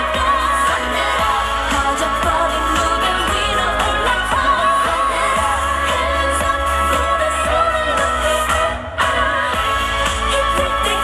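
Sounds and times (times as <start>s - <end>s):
pop dance song with female vocals: 0.0s - 11.0s.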